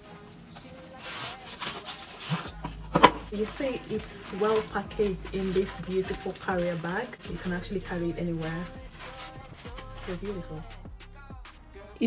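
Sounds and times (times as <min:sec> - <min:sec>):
fabric scraping on cardboard: 0:00.6 - 0:10.6.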